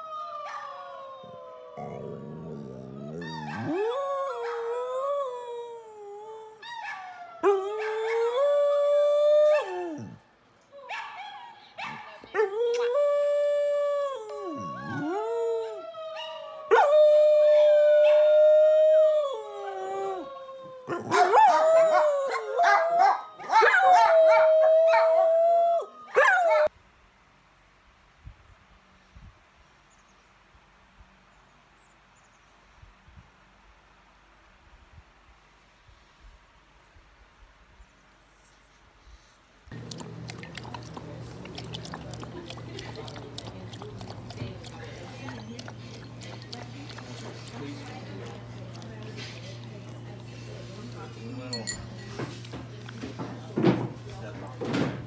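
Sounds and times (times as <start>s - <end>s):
dog howling: 0.0s - 10.2s, 12.4s - 26.7s.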